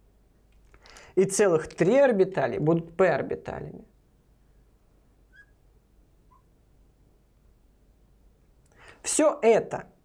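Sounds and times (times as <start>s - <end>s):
marker squeaking on glass: 5.2s - 5.7s.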